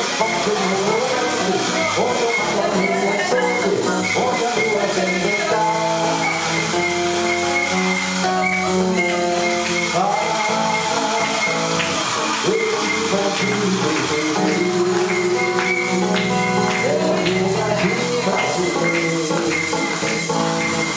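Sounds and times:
samba on acoustic guitar: 0.0s - 20.9s.

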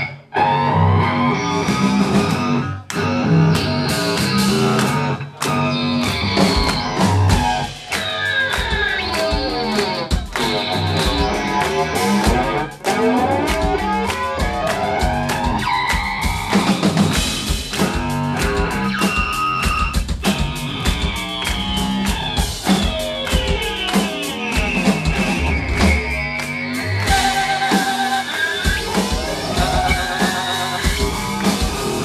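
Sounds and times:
distorted electric guitar: 0.0s - 32.0s
pounding drum kit: 1.6s - 32.0s.

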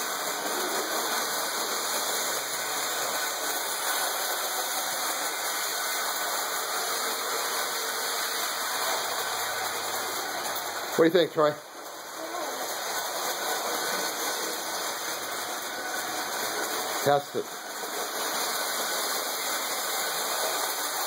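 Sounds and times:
toy train motor whirring: 0.0s - 21.0s.

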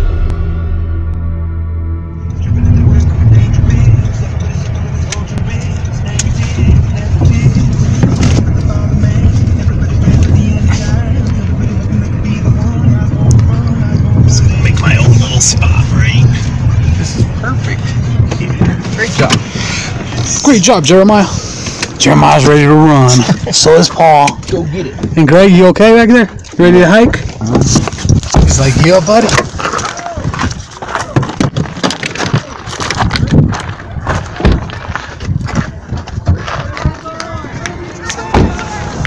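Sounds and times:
car cabin rumble: 0.0s - 29.6s
voices: 2.3s - 31.4s, 32.2s - 39.0s.

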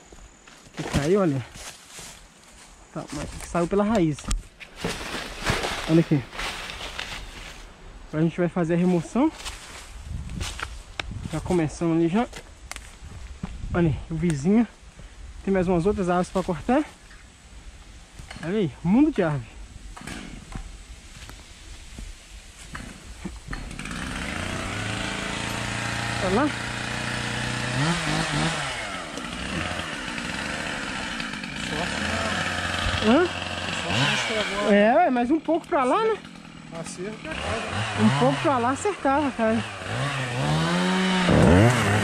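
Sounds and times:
light cracks and rustles: 3.4s - 7.7s, 12.3s - 13.4s
chainsaw running: 22.7s - 42.0s.

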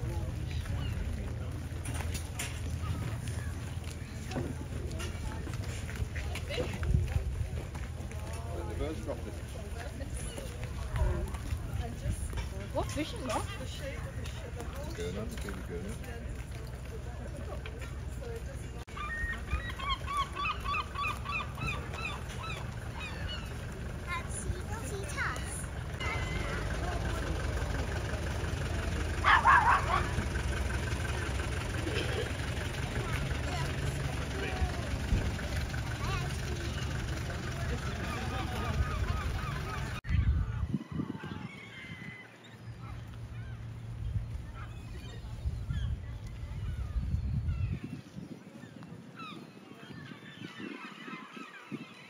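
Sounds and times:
flock of birds calling: 0.0s - 7.0s, 17.4s - 52.0s
van engine idling: 22.2s - 40.0s
dog barking: 29.2s - 30.2s.

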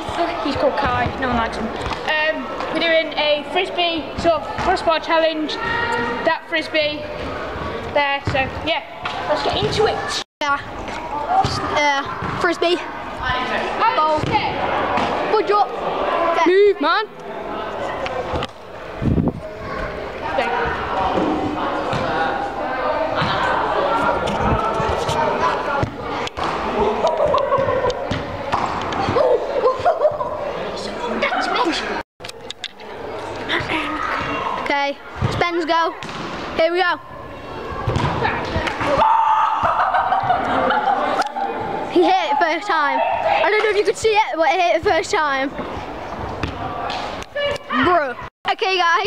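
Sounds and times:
indoor sports hall background noise: 0.0s - 49.0s
voices talking: 0.0s - 49.0s.

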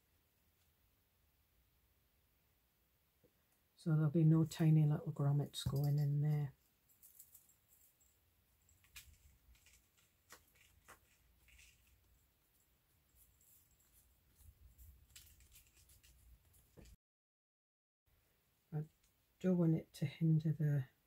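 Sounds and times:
paper rustling: 8.7s - 12.3s, 13.1s - 17.0s.

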